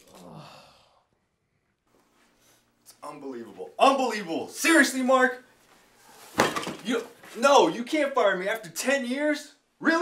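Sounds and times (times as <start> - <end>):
man sighing: 0.0 - 1.1.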